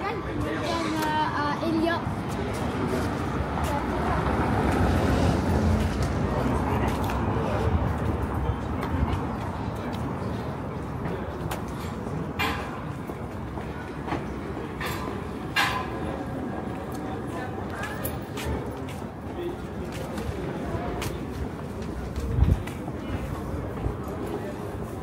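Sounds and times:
passers-by chatting: 0:00.0 - 0:25.0.

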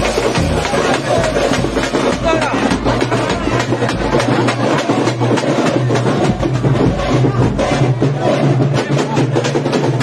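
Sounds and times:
crowd din: 0:00.0 - 0:10.0
fast loud drumming: 0:00.0 - 0:10.0.

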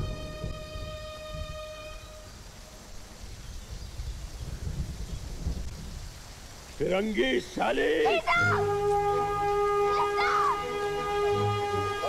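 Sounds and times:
rain hiss: 0:00.0 - 0:12.0
low rumble of thunder: 0:03.6 - 0:06.9
held musical note: 0:08.1 - 0:12.0.

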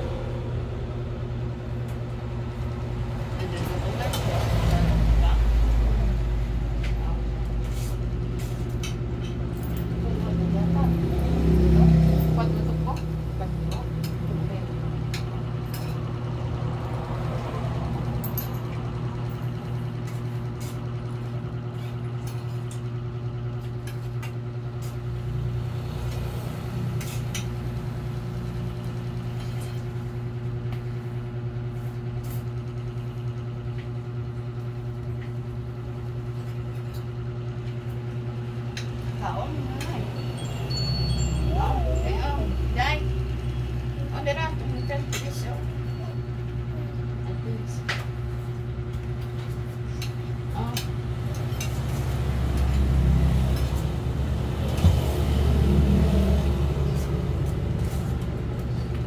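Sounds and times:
low mechanical hum: 0:00.0 - 0:59.0
spoons clinking on plates: 0:50.0 - 0:52.0.

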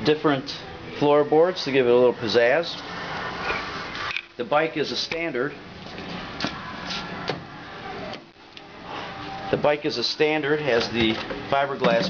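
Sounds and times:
steady room hum: 0:00.0 - 0:12.0.

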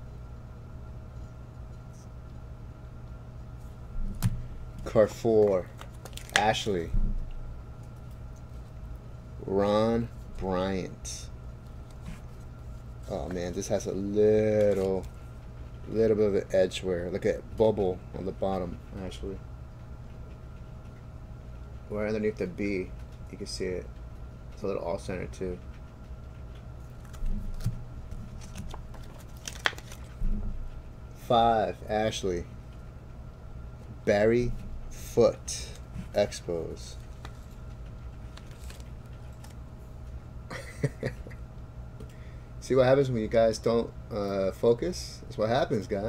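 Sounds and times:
low background hum: 0:00.0 - 0:46.0
plastic card sleeve handling: 0:04.2 - 0:06.7, 0:14.5 - 0:15.2, 0:26.8 - 0:30.3, 0:36.9 - 0:39.6
man speaking: 0:13.0 - 0:15.1, 0:31.2 - 0:32.5, 0:34.0 - 0:37.0, 0:42.6 - 0:46.0.

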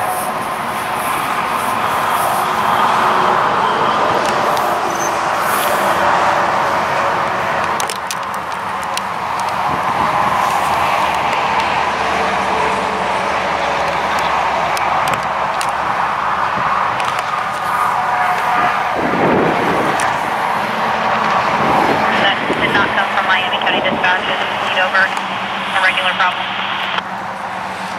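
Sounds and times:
vehicle passing close by: 0:00.0 - 0:25.8
road traffic noise: 0:00.0 - 0:27.9.

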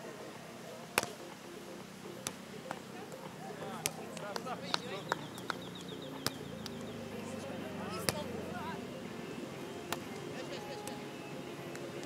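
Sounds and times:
low background noise: 0:00.0 - 0:12.0
bird trilling: 0:04.7 - 0:07.1.

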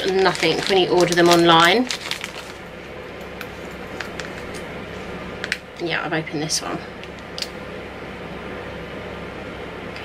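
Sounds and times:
plastic bag crinkling: 0:00.0 - 0:02.7, 0:03.6 - 0:04.6
electric heater whirring: 0:00.0 - 0:10.0.

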